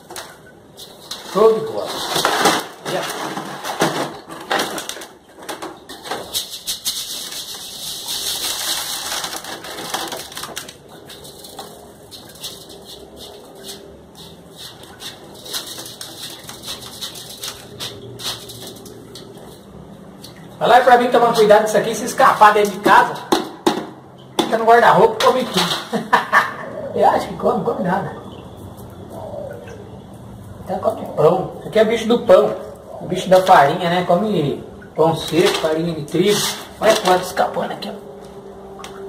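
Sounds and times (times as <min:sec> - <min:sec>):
bran rustling on a mesh sieve: 0:06.2 - 0:19.7, 0:35.2 - 0:37.4.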